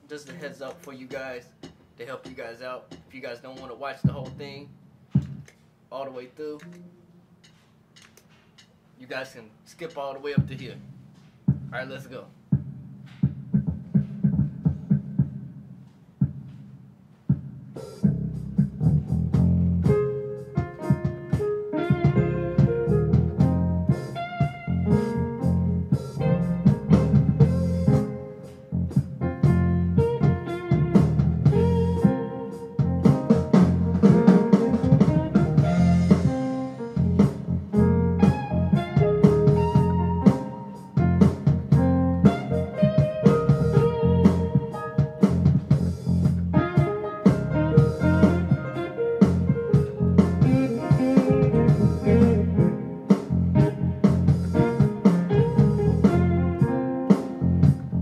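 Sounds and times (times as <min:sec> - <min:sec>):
funky synthesizer band jam: 0:01.0 - 0:04.6, 0:17.4 - 0:58.0.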